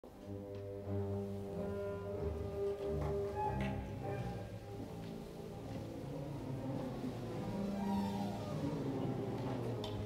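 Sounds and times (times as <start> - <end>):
orchestral music with brass: 0.1 - 10.0.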